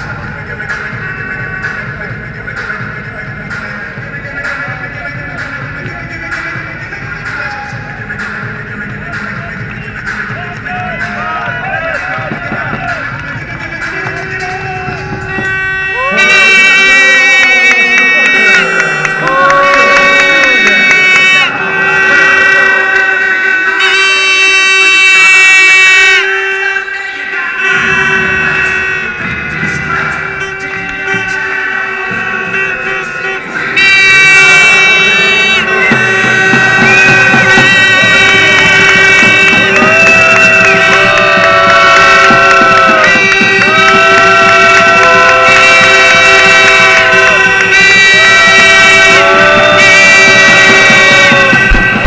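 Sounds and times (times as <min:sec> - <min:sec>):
crowd noise: 0:00.0 - 0:52.0
wind instrument melody: 0:00.0 - 0:52.0.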